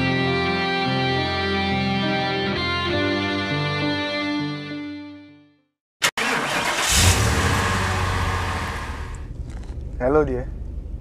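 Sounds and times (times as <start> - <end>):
music: 0.0 - 5.8
car engine rumble: 6.2 - 11.0.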